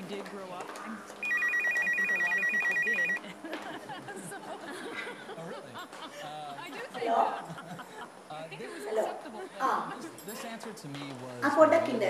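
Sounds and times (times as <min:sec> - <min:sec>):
electronic telephone ringer trilling: 0:01.2 - 0:03.2.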